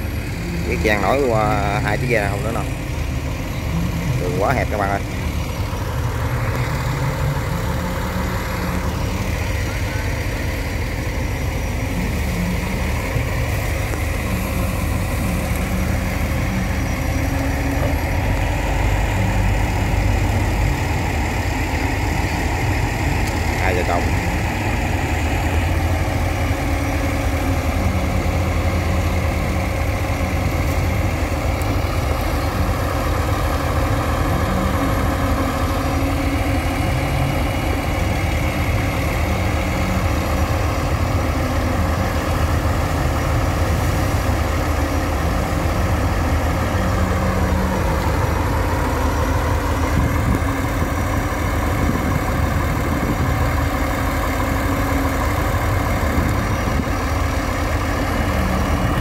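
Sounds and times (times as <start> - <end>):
barge engine running: 0.0 - 59.0.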